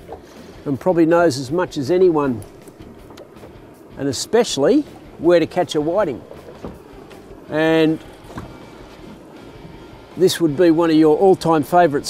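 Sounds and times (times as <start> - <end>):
water noise around boat: 0.0 - 12.0
wind: 0.0 - 12.0
faint tap: 6.6 - 6.8, 8.3 - 8.6.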